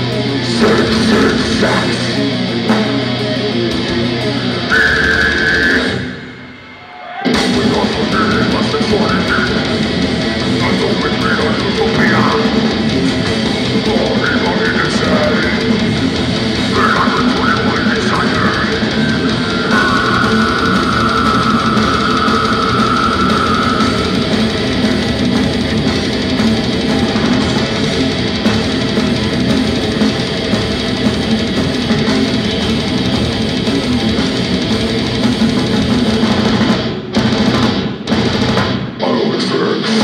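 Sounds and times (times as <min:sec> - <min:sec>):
death metal band playing live: 0:00.0 - 0:40.0.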